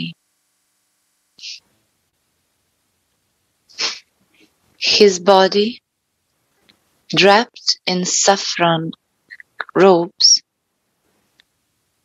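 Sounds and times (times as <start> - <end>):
woman speaking: 1.4 - 1.6, 3.8 - 4.0, 4.8 - 5.8, 7.1 - 10.5.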